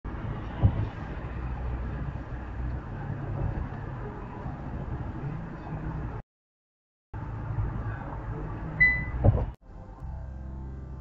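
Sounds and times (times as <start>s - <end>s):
car road and engine rumble: 0.0s - 6.2s, 7.2s - 11.0s
sharp thump: 0.6s - 1.0s, 9.0s - 9.6s.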